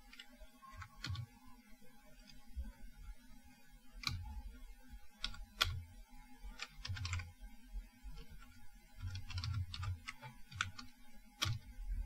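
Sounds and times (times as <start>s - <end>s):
computer keyboard keystrokes: 0.1s - 1.3s, 4.0s - 4.2s, 5.2s - 5.8s, 6.6s - 7.3s, 8.2s - 11.7s.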